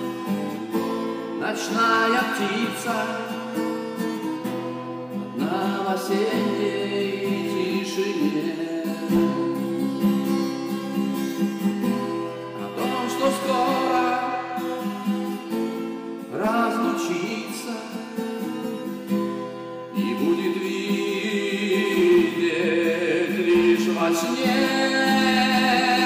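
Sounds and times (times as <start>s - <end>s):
acoustic guitar chords: 0.0s - 26.0s
man singing: 1.4s - 3.4s, 5.4s - 9.7s, 12.6s - 15.1s, 16.3s - 18.3s, 19.9s - 26.0s.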